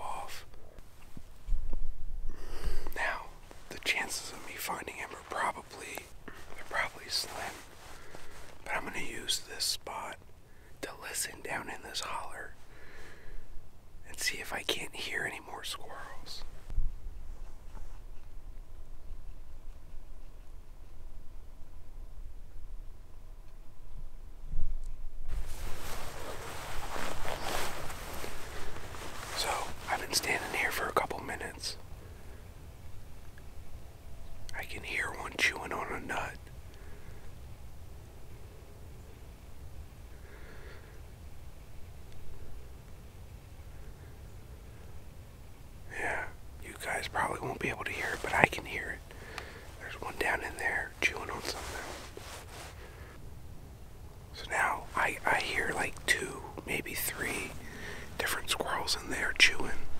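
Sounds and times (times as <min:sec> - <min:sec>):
man whispering: 0:00.0 - 0:00.8, 0:02.5 - 0:13.2, 0:14.0 - 0:16.7, 0:25.3 - 0:31.8, 0:34.5 - 0:37.0, 0:45.8 - 0:53.2, 0:54.3 - 0:59.9.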